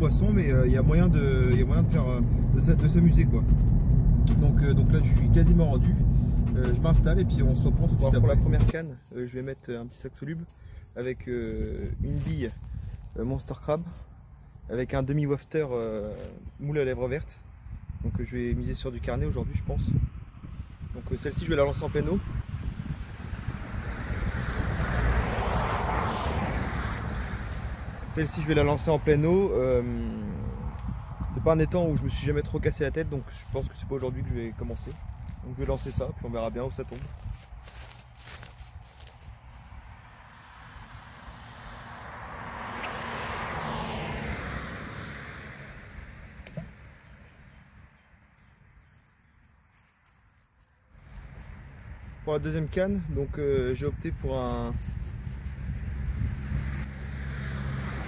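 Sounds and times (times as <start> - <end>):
wind buffeting microphone: 0.0 - 8.8, 10.5 - 15.0, 16.0 - 41.2, 51.0 - 58.0.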